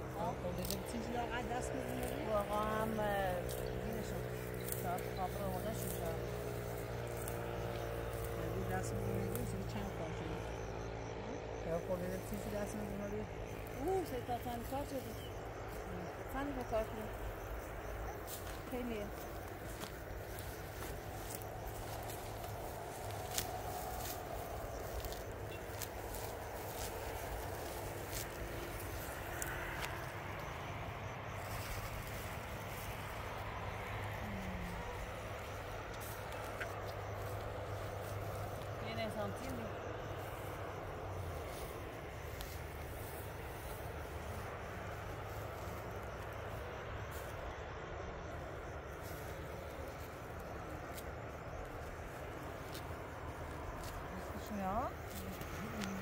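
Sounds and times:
steady low hum: 0:00.0 - 0:56.0
rustling: 0:16.6 - 0:30.6.

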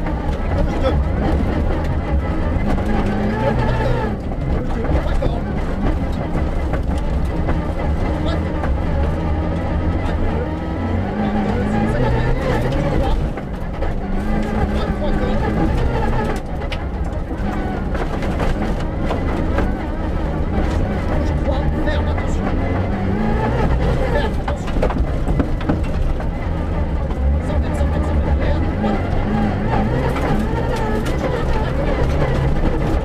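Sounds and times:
car rumbling over dirt road: 0:00.0 - 0:33.0
rally car engine revving: 0:00.0 - 0:33.0.

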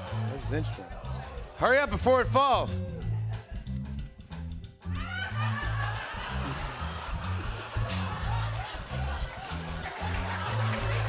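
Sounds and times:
bass line: 0:00.0 - 0:11.0
audience noise: 0:05.8 - 0:11.0.

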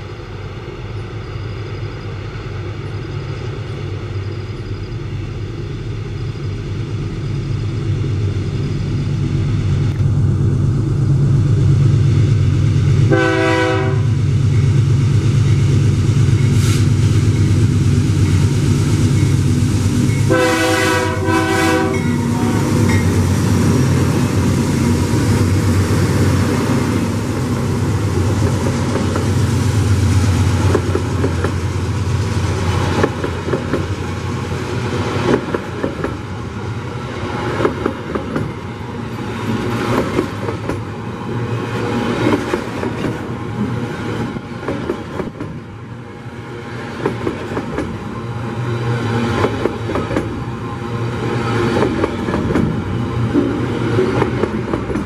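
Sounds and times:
locomotive engine rumble: 0:00.0 - 0:55.0
train air horn blasts: 0:13.1 - 0:14.2, 0:20.3 - 0:22.6
train wheels clattering on rails: 0:21.8 - 0:36.5, 0:37.3 - 0:41.0, 0:41.6 - 0:45.8, 0:46.8 - 0:48.1, 0:49.0 - 0:50.5, 0:51.2 - 0:55.0.

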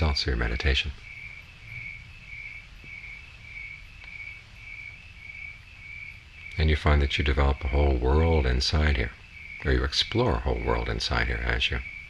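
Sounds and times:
cricket chirping: 0:00.0 - 0:12.0
faint low rumble: 0:00.0 - 0:12.0.

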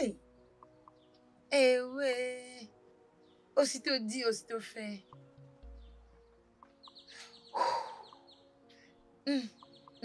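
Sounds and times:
bird chirping: 0:00.0 - 0:01.9, 0:03.2 - 0:10.0
faint film music: 0:00.0 - 0:10.0.

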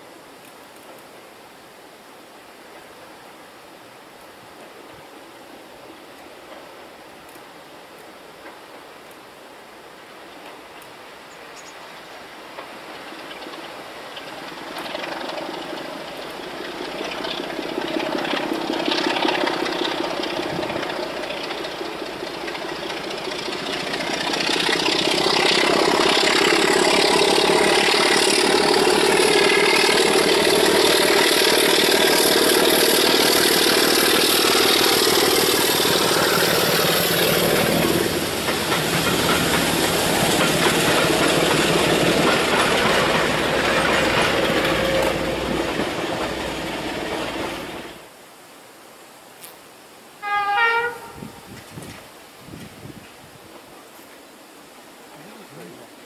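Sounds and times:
diesel locomotive engines: 0:05.4 - 0:48.2, 0:50.2 - 0:52.0.

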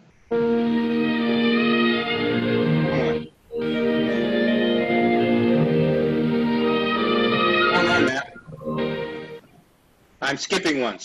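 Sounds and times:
sustained music chords: 0:00.3 - 0:09.5.

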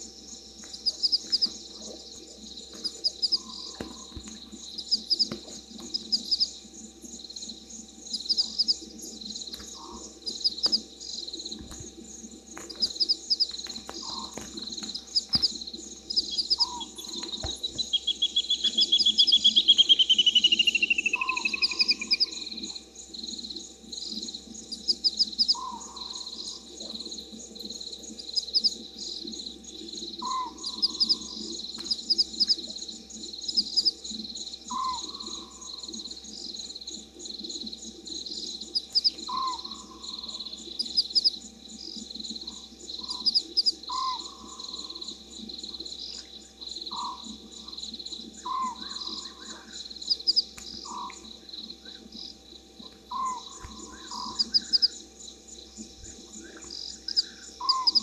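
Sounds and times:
frogs calling: 0:00.0 - 0:58.0
insects chirping: 0:00.0 - 0:58.0.

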